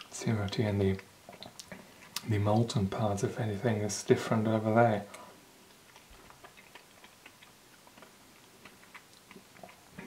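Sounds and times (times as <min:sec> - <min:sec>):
mouth clicks and smacks: 0:01.2 - 0:02.7, 0:05.1 - 0:10.0.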